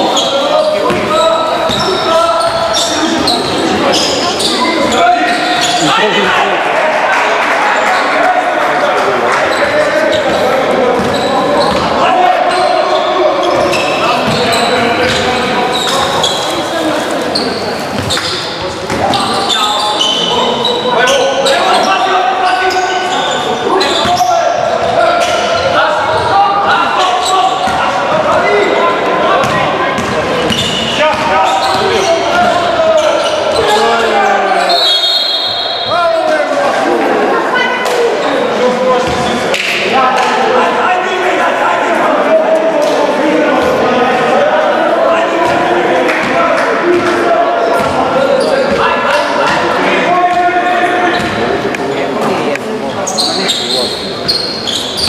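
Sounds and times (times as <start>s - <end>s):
voices calling out in hall: 0.0s - 55.0s.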